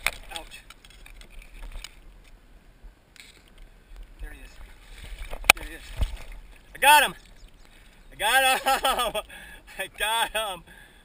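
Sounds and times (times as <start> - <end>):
water sloshing: 0.0 - 2.3, 3.2 - 9.5
camera handling rumble: 0.0 - 2.4, 3.2 - 6.4
grass rustling: 0.0 - 9.4.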